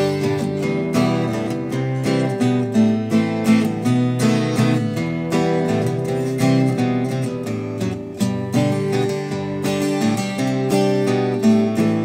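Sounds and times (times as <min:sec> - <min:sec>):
acoustic guitar picking and strumming: 0:00.0 - 0:12.0.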